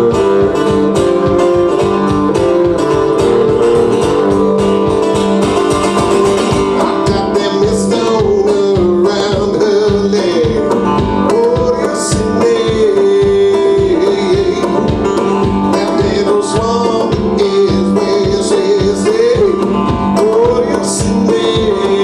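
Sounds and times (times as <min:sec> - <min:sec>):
double bass: 0:00.0 - 0:22.0
resonator guitar: 0:00.0 - 0:22.0.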